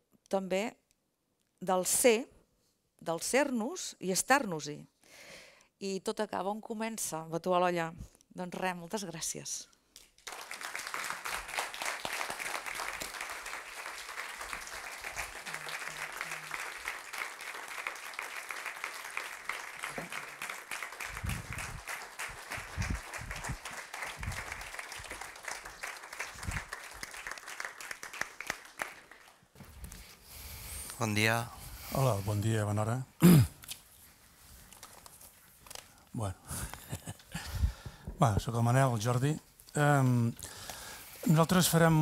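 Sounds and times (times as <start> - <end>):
audience applauding: 10.2 - 29.6.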